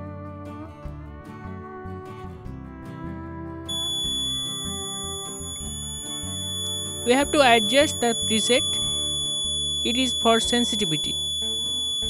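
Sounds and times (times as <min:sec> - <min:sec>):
guitar music: 0:00.0 - 0:12.0
high-pitched buzzer tone: 0:03.7 - 0:12.0.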